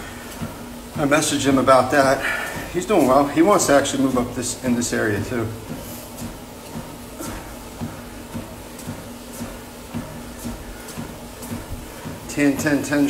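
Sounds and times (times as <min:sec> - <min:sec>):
exercise machine running: 0:00.0 - 0:13.0.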